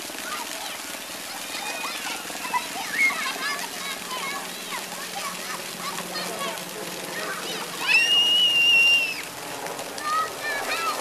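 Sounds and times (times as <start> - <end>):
child squealing: 7.8 - 9.3.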